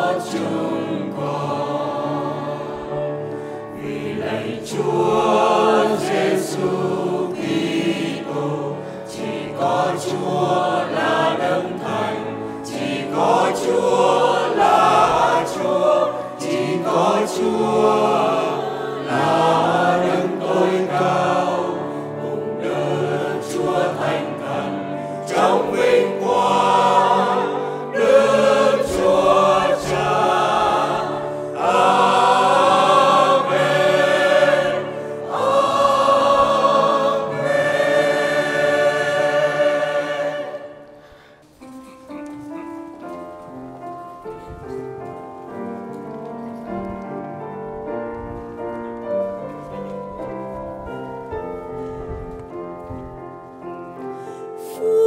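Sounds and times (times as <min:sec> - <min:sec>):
women's choir singing a hymn: 0:00.0 - 0:41.3, 0:53.7 - 0:55.0.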